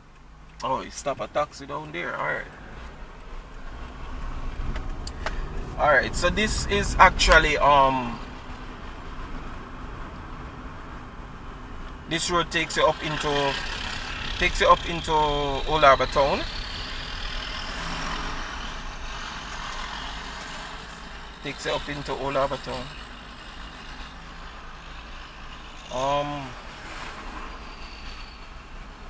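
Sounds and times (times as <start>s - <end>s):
car road and engine noise: 0.0s - 29.0s.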